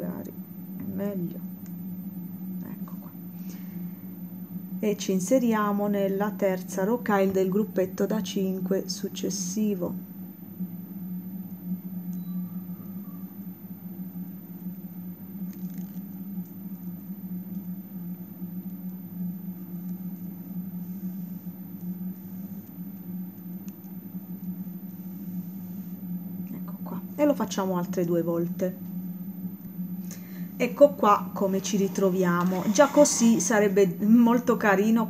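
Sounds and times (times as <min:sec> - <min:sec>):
low background hum: 0:00.0 - 0:35.0.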